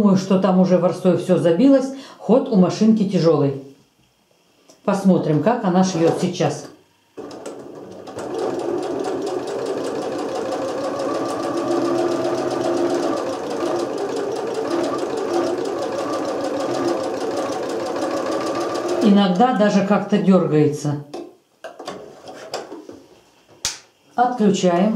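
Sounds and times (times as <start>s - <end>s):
sewing machine stitching: 7.2s - 19.2s.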